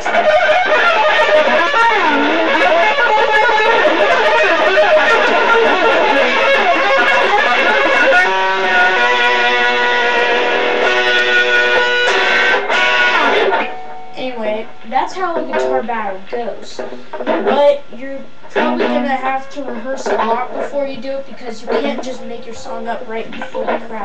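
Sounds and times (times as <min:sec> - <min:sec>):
loud electric guitar music: 0:00.0 - 0:22.2, 0:22.9 - 0:24.0
person singing: 0:18.5 - 0:20.8.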